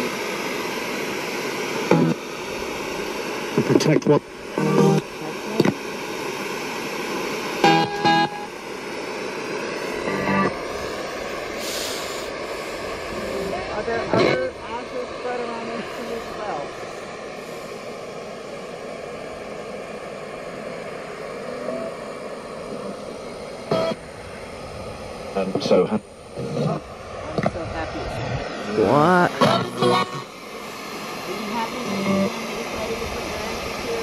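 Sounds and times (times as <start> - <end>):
steady static: 0.0 - 34.0.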